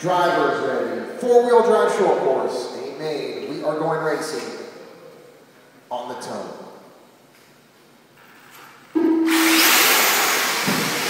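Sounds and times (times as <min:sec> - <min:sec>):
electronic start tone: 0:09.0 - 0:09.8.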